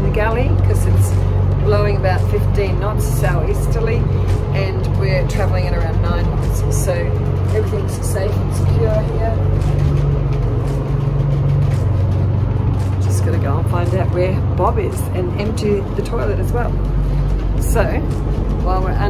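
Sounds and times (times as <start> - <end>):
boat engines droning: 0.0 - 19.0.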